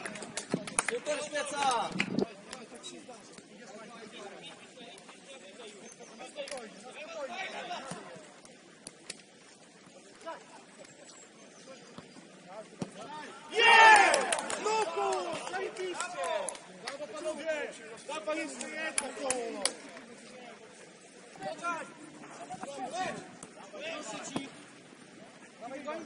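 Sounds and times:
players shouting: 12.9 - 19.9.

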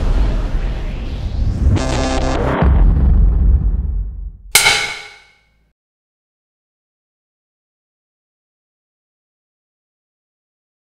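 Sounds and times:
sharp metallic clang: 4.6 - 5.4.

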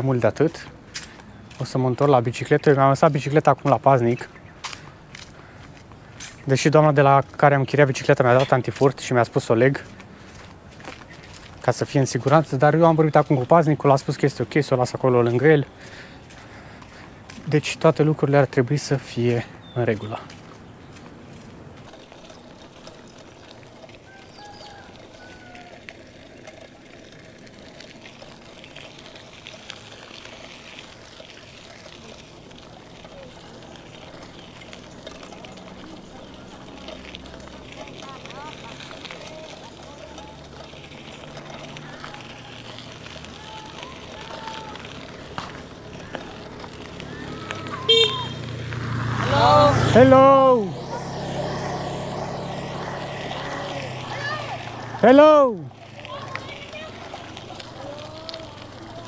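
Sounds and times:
bicycle road noise on dirt: 0.0 - 59.0
motorbike engine passing: 0.0 - 59.0.

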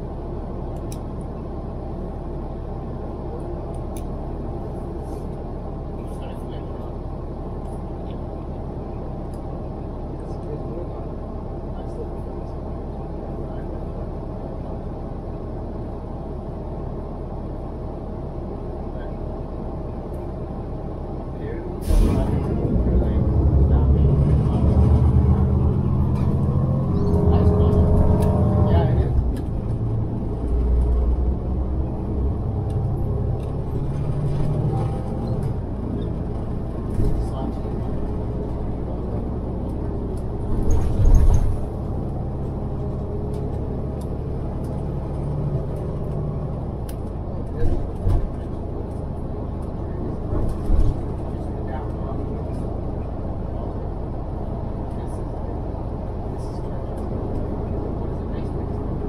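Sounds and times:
bus engine hum: 0.0 - 59.0
bus jolts: 0.0 - 59.0
road rumble: 0.0 - 59.0.

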